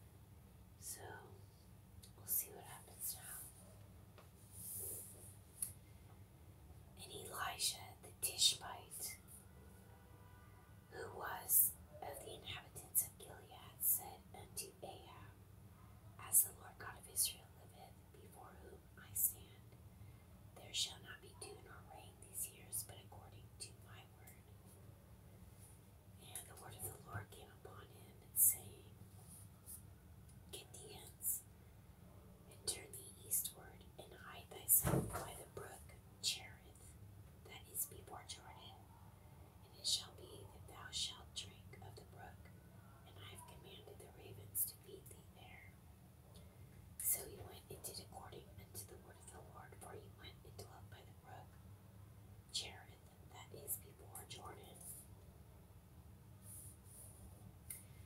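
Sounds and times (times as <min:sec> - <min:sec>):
faint low hum: 0:00.0 - 0:58.0
person whispering: 0:00.8 - 0:01.4, 0:02.0 - 0:03.6, 0:07.0 - 0:09.2, 0:10.9 - 0:15.4, 0:16.2 - 0:19.7, 0:20.6 - 0:24.5, 0:26.2 - 0:29.0, 0:30.5 - 0:31.4, 0:32.5 - 0:38.9, 0:39.6 - 0:45.8, 0:47.0 - 0:51.5, 0:52.5 - 0:55.0.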